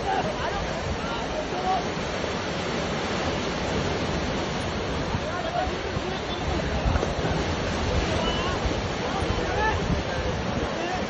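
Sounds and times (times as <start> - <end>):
surf washing over rocks: 0.0 - 11.0
wind buffeting microphone: 2.9 - 11.0.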